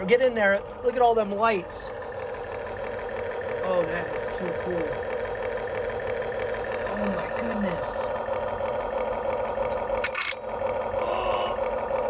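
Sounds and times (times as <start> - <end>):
electronic engine idle drone: 0.0 - 12.0.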